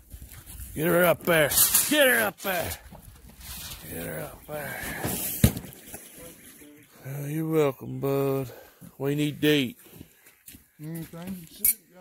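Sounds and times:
box landing with a thud: 5.0s - 5.7s.

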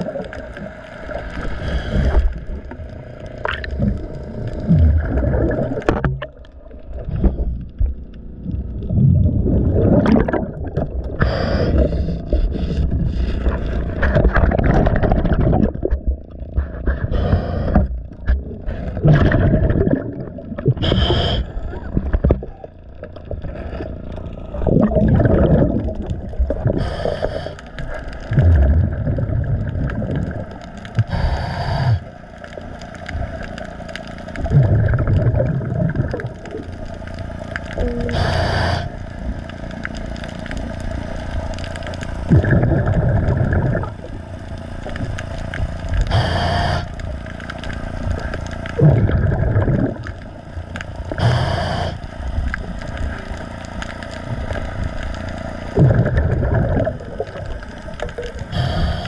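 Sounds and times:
bubble exhalations: 0.0s - 0.4s, 3.4s - 32.1s, 34.4s - 36.7s, 37.7s - 39.0s, 42.2s - 44.2s, 48.1s - 50.3s, 55.7s - 59.0s
faint scraping underwater: 0.0s - 59.0s
regulator hissing inhalations: 20.8s - 21.6s, 26.7s - 27.7s, 31.0s - 32.1s, 38.1s - 39.0s, 46.1s - 47.0s, 51.1s - 52.0s, 58.5s - 59.0s.

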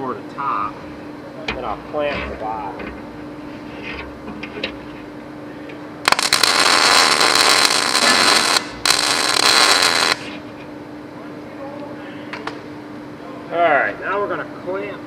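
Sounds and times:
steady low hum: 0.0s - 15.0s
welding arc crackling on steel: 6.0s - 10.4s.

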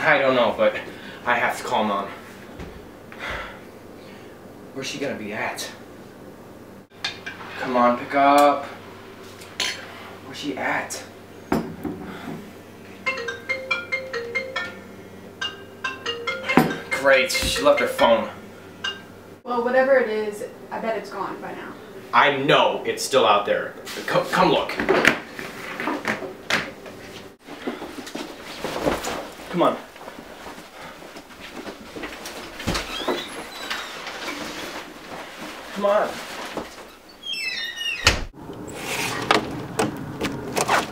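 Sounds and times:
mobile phone ringtone: 13.0s - 18.4s
footsteps: 16.7s - 18.2s, 27.0s - 37.0s
clothing rustle: 27.0s - 37.1s.

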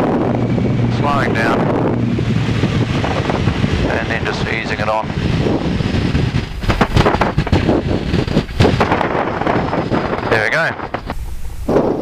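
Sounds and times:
small plane engine rumbling: 0.0s - 12.0s
wind buffeting microphone: 0.0s - 12.0s.

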